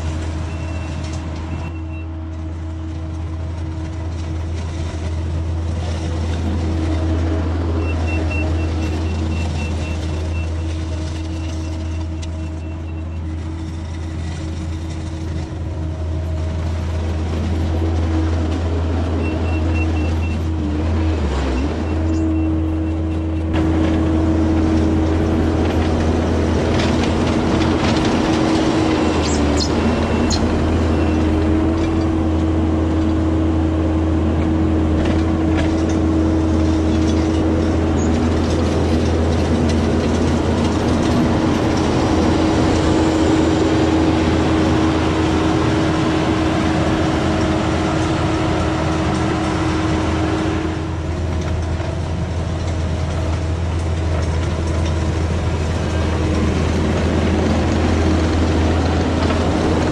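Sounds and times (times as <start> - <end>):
diesel engine running under load: 0.0 - 59.9
grading attachment dragging through gravel: 2.3 - 59.9.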